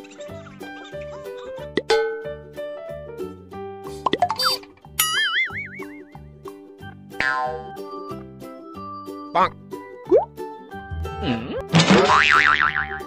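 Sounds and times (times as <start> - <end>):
upbeat background music: 0.0 - 13.0
wobbling boing: 7.2 - 7.7, 11.2 - 13.0.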